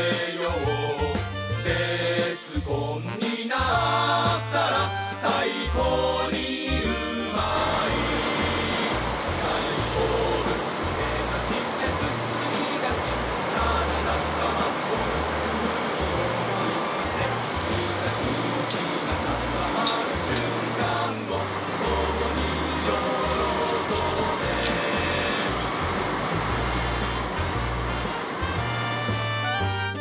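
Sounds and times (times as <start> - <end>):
meat deep-frying in oil: 5.3 - 29.7.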